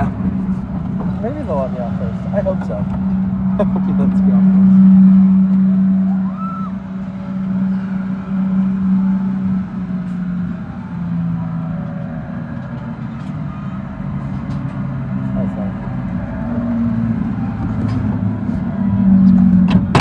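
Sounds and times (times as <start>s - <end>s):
ride machinery humming: 0.0s - 20.0s.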